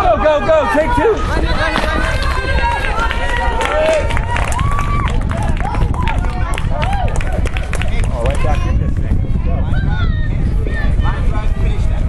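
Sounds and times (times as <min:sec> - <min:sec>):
people talking and calling out: 0:00.0 - 0:12.0
steady low rumble: 0:01.0 - 0:12.0.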